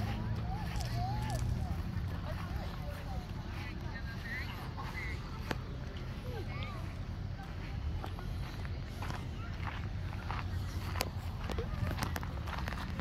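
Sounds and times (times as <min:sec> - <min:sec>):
footsteps on gravel: 0:00.0 - 0:13.0
low microphone rumble: 0:00.0 - 0:13.0.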